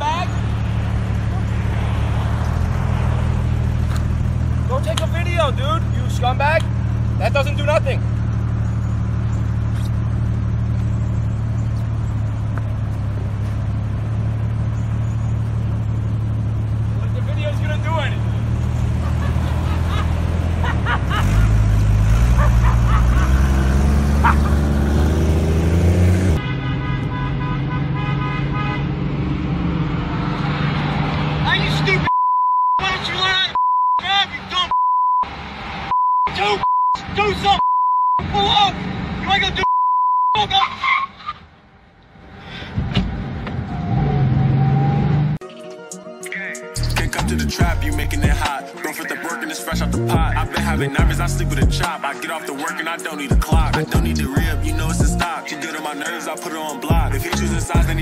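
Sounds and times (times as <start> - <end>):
car engine running: 0.0 - 28.7, 46.8 - 48.6, 49.7 - 51.9, 52.6 - 55.3, 56.8 - 58.0
voices: 17.0 - 18.3
short honk: 26.4 - 28.8
censor bleep: 32.1 - 32.8, 33.5 - 34.0, 34.7 - 35.3, 35.9 - 37.0, 37.6 - 38.2, 39.6 - 40.4.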